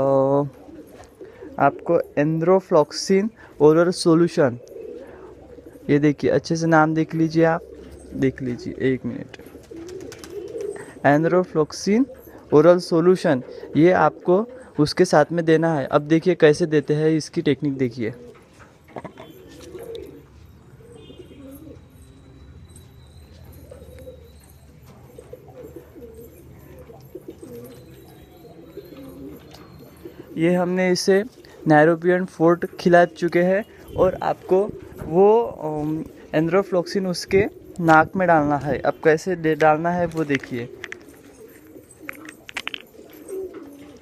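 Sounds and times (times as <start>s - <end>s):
pigeons cooing: 0.0s - 17.0s, 17.6s - 44.0s.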